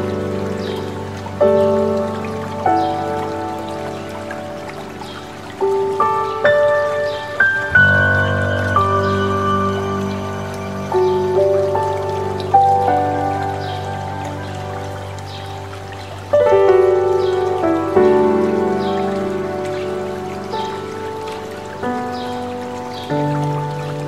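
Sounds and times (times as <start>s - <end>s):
running water rushing: 0.0s - 24.0s
slow solo piano music: 0.0s - 24.0s.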